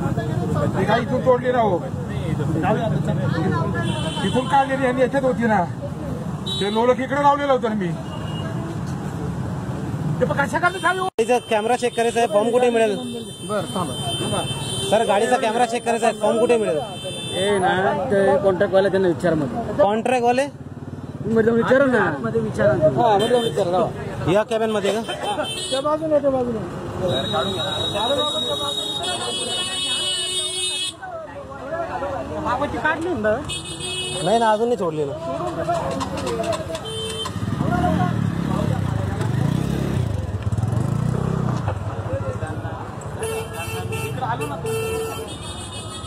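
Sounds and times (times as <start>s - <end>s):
road traffic noise: 0.0s - 46.0s
people talking: 21.2s - 33.5s, 37.6s - 39.8s.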